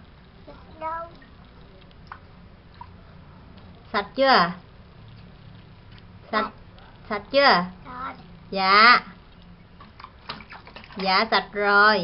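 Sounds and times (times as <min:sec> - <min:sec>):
hands splashing water in cup: 0:09.8 - 0:11.2.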